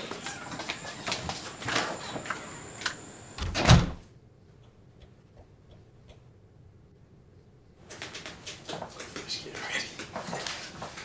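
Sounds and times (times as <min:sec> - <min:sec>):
door thudding shut: 0:03.3 - 0:04.0.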